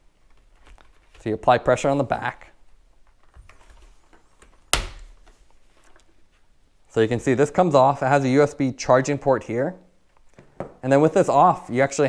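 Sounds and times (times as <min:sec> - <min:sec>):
handling rustle: 0:00.0 - 0:01.4.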